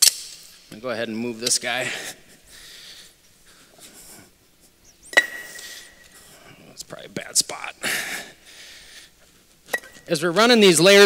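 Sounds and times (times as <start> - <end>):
faint shuffling and handling: 0.7 - 7.6.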